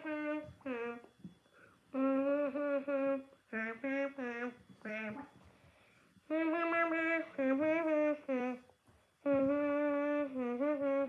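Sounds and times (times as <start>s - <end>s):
child humming: 0.0s - 1.1s, 2.0s - 5.4s, 6.3s - 11.0s.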